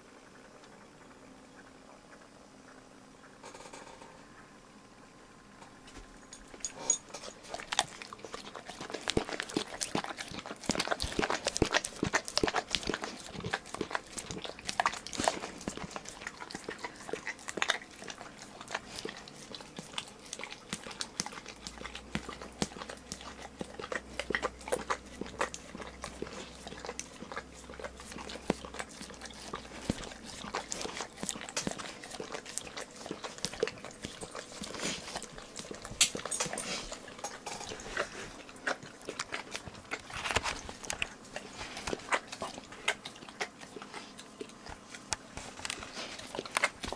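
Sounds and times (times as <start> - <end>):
dog licking and smacking: 7.2 - 46.9.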